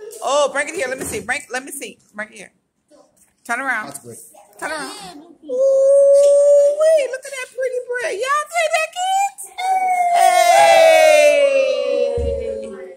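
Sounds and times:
children calling out: 9.5 - 12.9.

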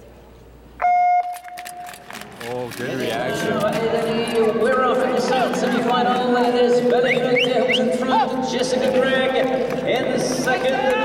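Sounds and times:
loud electronic start beep: 0.8 - 1.5.

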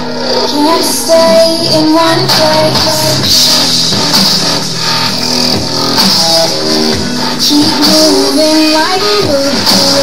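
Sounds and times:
dubstep electronic music: 0.0 - 10.0.

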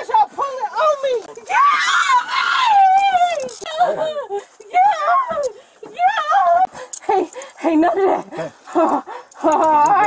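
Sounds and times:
woman screaming: 1.5 - 4.2.

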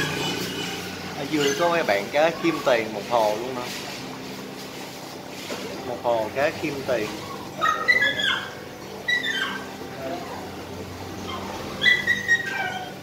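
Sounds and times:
animal whining cries: 0.0 - 3.1, 7.0 - 13.0.

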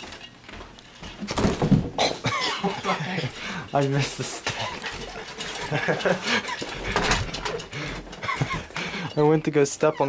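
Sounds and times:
people laughing: 2.3 - 3.5, 4.4 - 7.2, 7.8 - 9.2.

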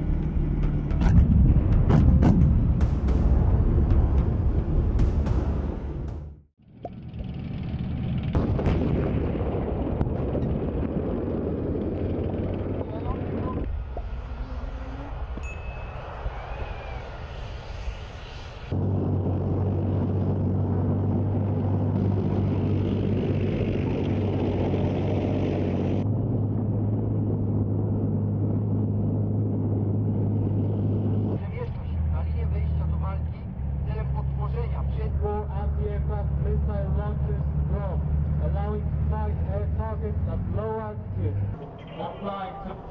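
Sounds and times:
tracked vehicle engines droning: 0.0 - 8.6, 9.8 - 42.9.

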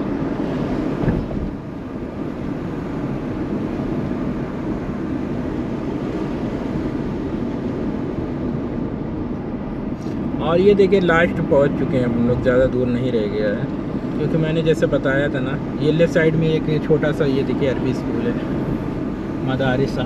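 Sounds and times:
car road and engine noise: 0.0 - 20.0.

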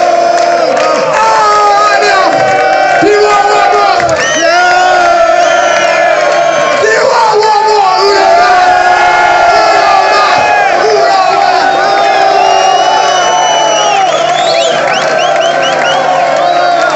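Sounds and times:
audience cheering and shouting: 0.0 - 16.9.

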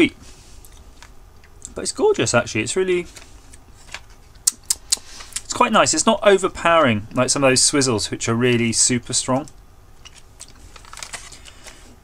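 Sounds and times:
candy box and plastic crinkling: 10.0 - 11.9.

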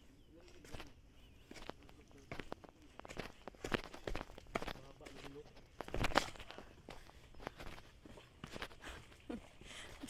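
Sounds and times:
footsteps on leafy dirt trail: 0.0 - 10.0.

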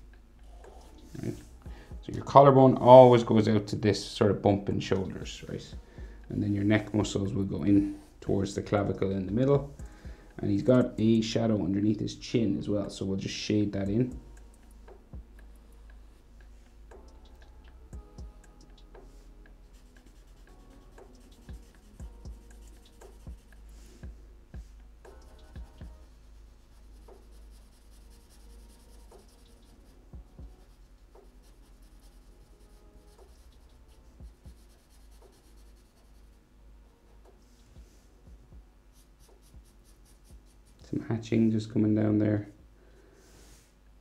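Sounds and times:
marker strokes on paper: 0.4 - 3.6, 6.4 - 9.0, 15.9 - 36.4, 38.9 - 41.0.

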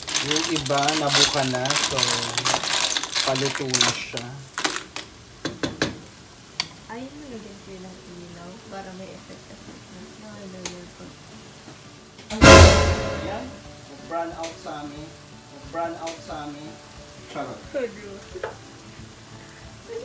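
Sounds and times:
loud burst of sizzling: 0.0 - 4.5, 11.3 - 20.0
garlic frying in oil: 0.0 - 12.4, 13.6 - 20.0.

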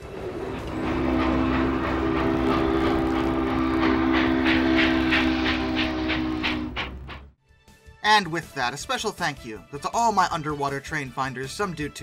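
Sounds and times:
steam locomotive chime whistle: 0.0 - 7.2
locomotive exhaust beats: 0.0 - 7.4.

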